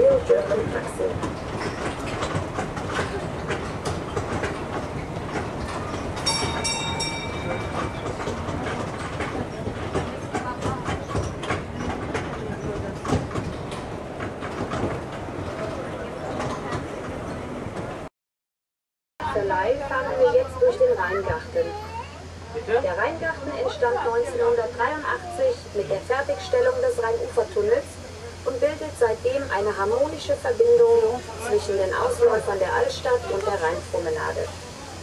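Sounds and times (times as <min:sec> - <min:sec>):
road train rattling and clattering: 0:00.0 - 0:18.1, 0:19.3 - 0:35.0.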